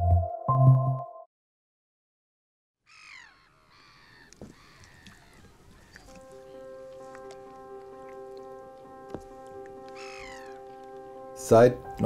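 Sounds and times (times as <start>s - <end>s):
soft outdoor background: 2.8s - 12.0s
seabird calls: 2.9s - 11.4s.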